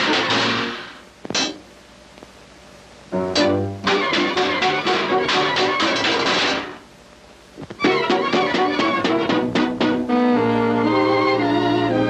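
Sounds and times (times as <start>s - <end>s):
orchestral cartoon music: 3.2s - 6.5s, 7.8s - 12.0s
sharp knocks: 3.9s - 6.8s.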